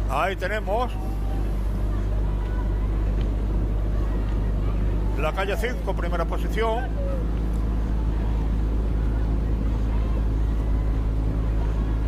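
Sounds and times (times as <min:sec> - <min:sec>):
low motor rumble: 0:00.0 - 0:12.0.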